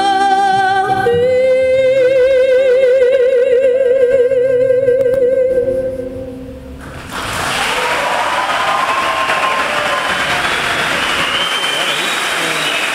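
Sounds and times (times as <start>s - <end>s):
audience applause: 6.8s - 12.9s.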